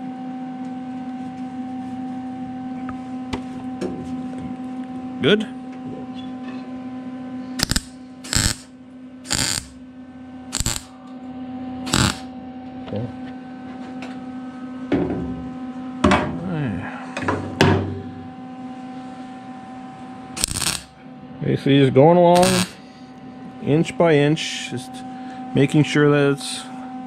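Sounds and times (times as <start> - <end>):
steady hum: 7.3 - 12.7, 18.0 - 21.4, 22.1 - 25.5
welder crackling bursts: 7.6 - 9.8, 10.5 - 10.9, 11.9 - 12.3, 20.4 - 21.0, 22.4 - 22.8.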